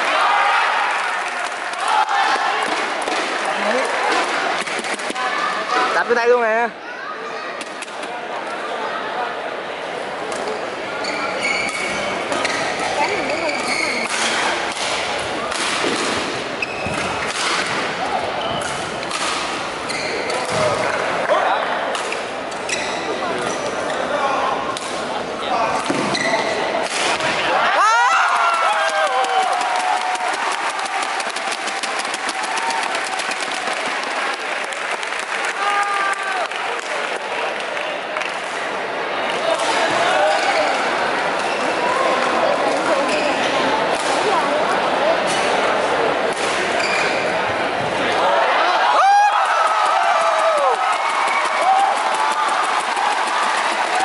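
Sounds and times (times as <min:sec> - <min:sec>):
spectator chatter: 0:00.0 - 0:54.0
court shoes squeaking: 0:10.3 - 0:14.5, 0:16.4 - 0:21.2, 0:22.1 - 0:24.1, 0:25.7 - 0:26.8, 0:42.7 - 0:44.4, 0:46.6 - 0:47.9.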